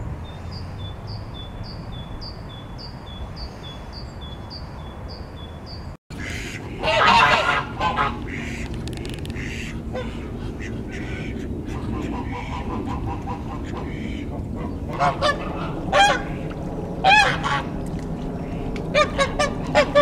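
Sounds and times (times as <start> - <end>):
ducks quacking: 6.1 - 17.8, 18.4 - 20.0.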